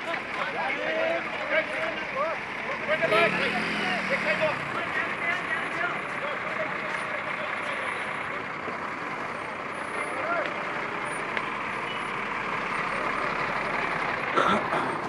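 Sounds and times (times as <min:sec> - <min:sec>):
street traffic rushing: 0:00.0 - 0:15.0.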